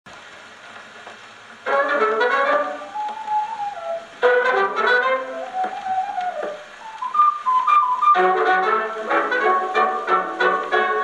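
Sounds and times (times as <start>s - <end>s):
dance band record on gramophone: 0.1s - 11.0s
brass passages: 1.6s - 11.0s
lone high instrument melody: 1.6s - 11.0s.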